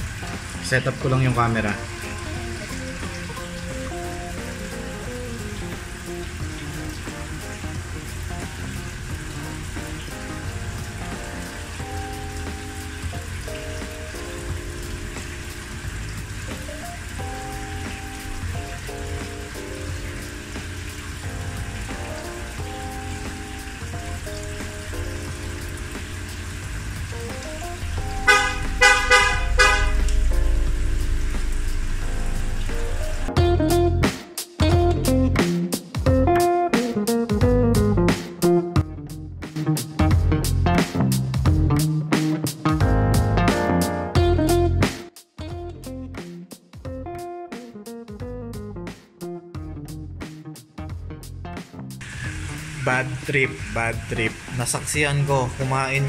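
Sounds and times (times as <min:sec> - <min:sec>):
sponge filters bubbling: 0:00.0 - 0:33.3, 0:52.0 - 0:56.0
light background music: 0:00.0 - 0:56.0
loud horn-like honks: 0:28.2 - 0:30.3.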